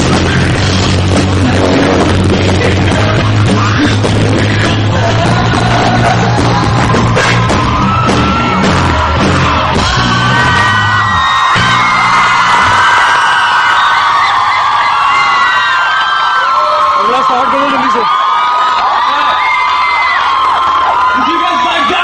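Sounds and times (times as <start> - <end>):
rock band playing live: 0.0 - 13.2
crowd yelling and whooping: 1.5 - 22.0.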